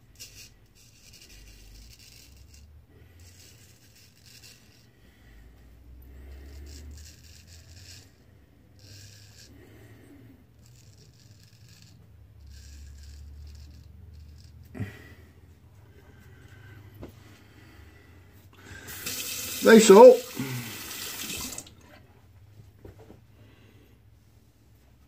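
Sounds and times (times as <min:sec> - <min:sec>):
razor scraping stubble: 0:00.0 - 0:05.0, 0:06.1 - 0:09.9, 0:10.5 - 0:14.8.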